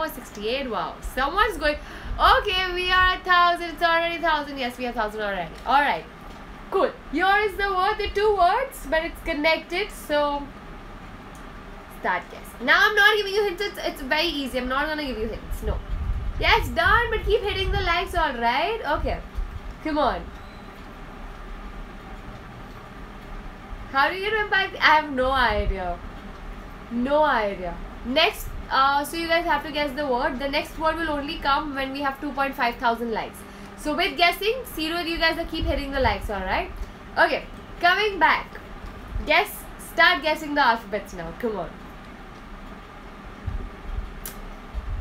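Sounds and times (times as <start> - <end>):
low background rumble: 0.0 - 45.0
short click: 44.2 - 44.4.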